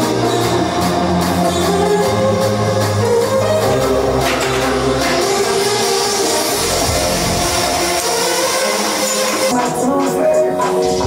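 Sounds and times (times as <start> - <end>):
loud music with held notes: 0.0 - 11.0.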